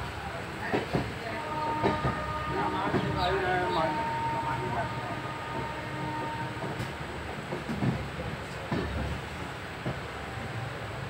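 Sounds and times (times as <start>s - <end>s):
train rumbling inside coach: 0.0s - 11.0s.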